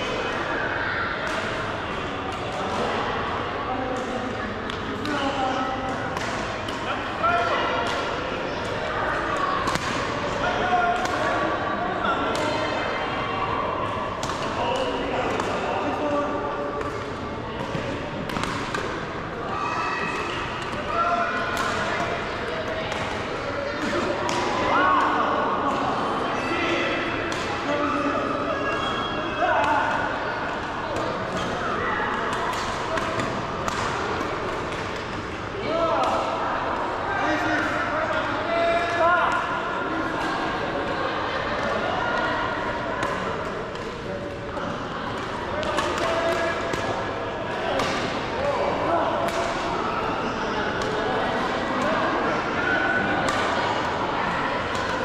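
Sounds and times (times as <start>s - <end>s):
people talking: 0.0s - 55.0s
rackets hitting shuttlecock: 4.0s - 6.9s, 7.8s - 11.4s, 14.2s - 15.7s, 16.7s - 19.1s, 20.1s - 25.2s, 27.0s - 27.6s, 29.6s - 36.3s, 43.0s - 48.3s, 49.2s - 49.8s, 53.0s - 53.9s, 54.6s - 55.0s.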